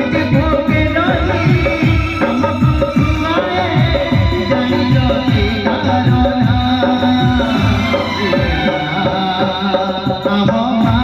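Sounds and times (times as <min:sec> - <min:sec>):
man singing over drums: 0:00.0 - 0:11.0.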